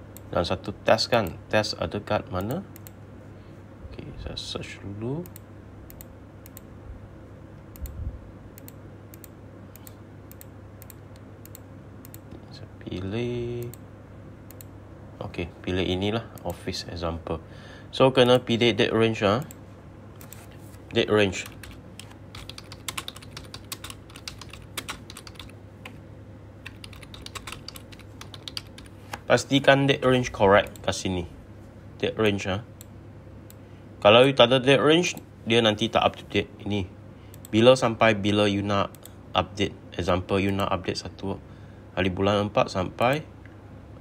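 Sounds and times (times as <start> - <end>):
faint low hum: 0.0 - 44.0
computer mouse clicking: 5.2 - 6.7, 7.7 - 8.0, 8.6 - 12.4, 14.5 - 14.7, 20.2 - 20.5, 21.4 - 26.0, 26.6 - 29.2.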